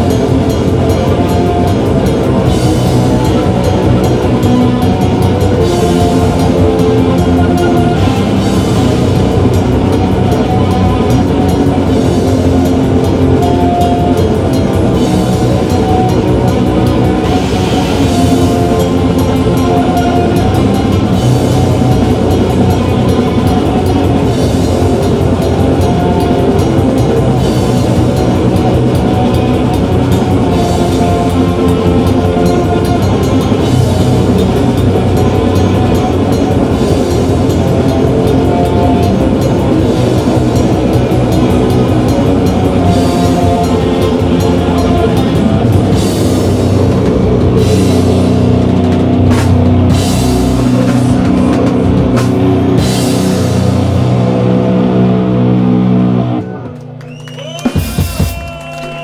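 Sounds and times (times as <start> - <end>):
cymbal crashes: 0.0 - 56.2
distorted electric guitars and bass: 0.0 - 59.0
drum kit: 0.0 - 59.0.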